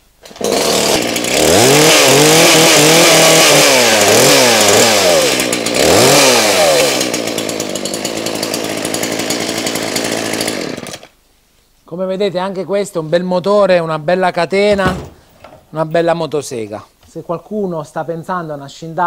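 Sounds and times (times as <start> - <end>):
chainsaw revving and idling: 0.2 - 11.1.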